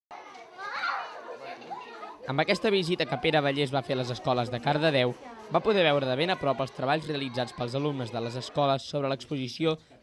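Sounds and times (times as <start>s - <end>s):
young children talking: 0.1s - 9.1s.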